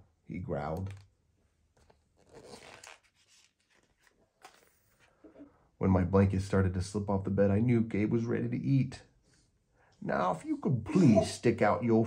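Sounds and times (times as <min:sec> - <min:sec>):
book page turning: 0:01.7 - 0:05.2.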